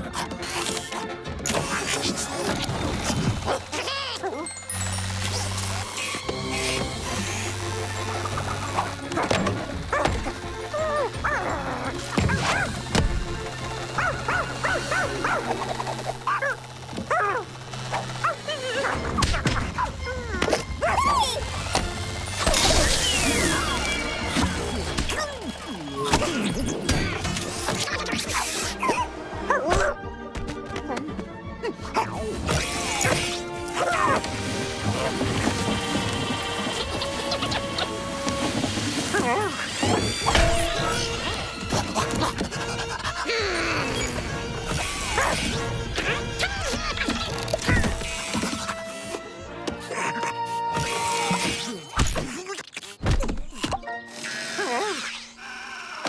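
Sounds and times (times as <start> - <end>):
background music: 0.0 - 52.5
cartoon dog yipping: 3.4 - 4.5, 8.8 - 12.8, 14.0 - 21.4, 44.7 - 48.7.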